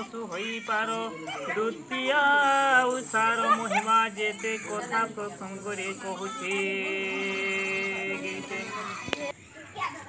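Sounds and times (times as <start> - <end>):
man chanting: 0.0 - 9.0
children and others talking: 0.0 - 10.0.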